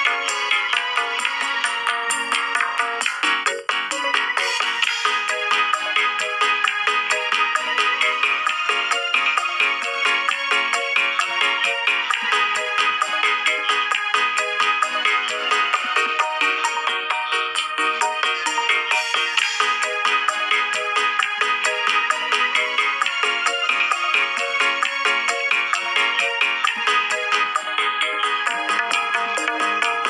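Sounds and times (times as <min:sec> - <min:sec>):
bamboo flute melody: 0:26.6 - 0:30.0.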